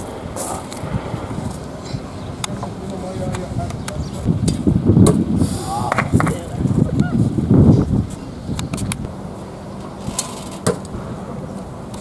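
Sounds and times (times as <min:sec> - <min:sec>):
outdoor murmur: 0:00.0 - 0:12.0
voices: 0:00.0 - 0:12.0.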